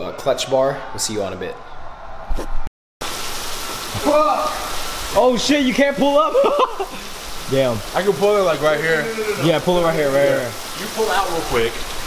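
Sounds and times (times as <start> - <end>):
heavy rain pouring: 3.0 - 12.0.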